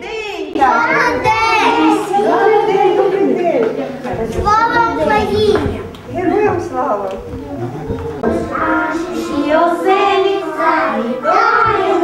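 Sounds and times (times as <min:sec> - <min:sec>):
young children singing: 0:00.0 - 0:05.9, 0:07.2 - 0:12.0.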